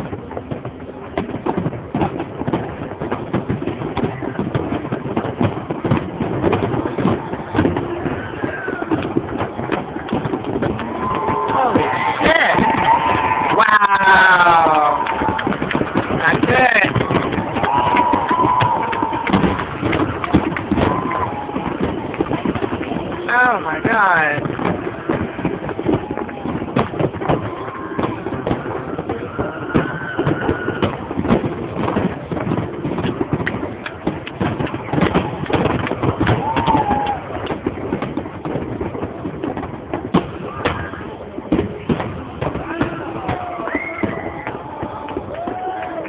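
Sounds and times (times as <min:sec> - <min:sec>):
crowd voices: 0:00.0 - 0:46.0
fireworks bangs and cracks: 0:00.0 - 0:46.0.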